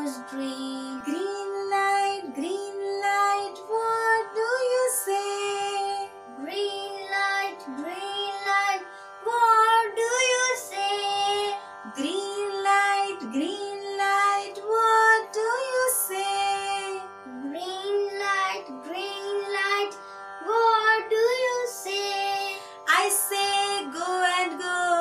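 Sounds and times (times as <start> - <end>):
boy singing: 0.0 - 25.0
woman singing: 0.0 - 25.0.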